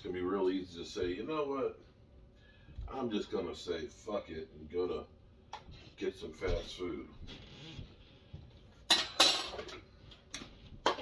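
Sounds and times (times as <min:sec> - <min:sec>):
dishes and cutlery clinking: 0:08.8 - 0:09.9.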